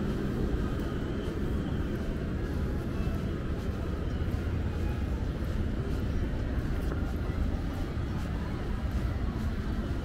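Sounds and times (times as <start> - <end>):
distant city traffic rumble: 0.0 - 10.0
faint footsteps: 0.0 - 10.0.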